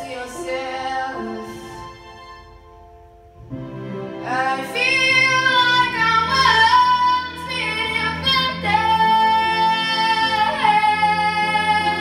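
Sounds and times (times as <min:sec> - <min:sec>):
girl singing a ballad: 0:04.3 - 0:12.0.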